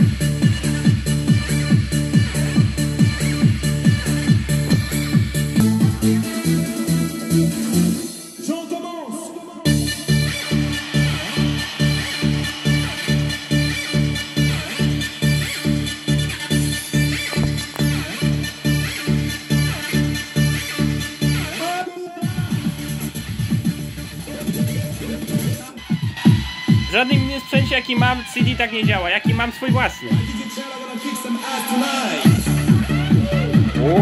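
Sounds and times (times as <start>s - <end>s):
heavy bass beat: 0.0s - 7.6s, 26.0s - 30.4s, 32.3s - 34.0s
electronic dance music from boombox: 0.0s - 34.0s.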